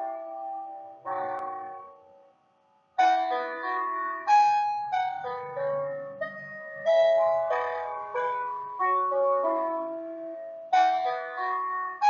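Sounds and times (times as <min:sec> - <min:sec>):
slow keyboard melody: 0:00.0 - 0:02.4, 0:03.0 - 0:12.0.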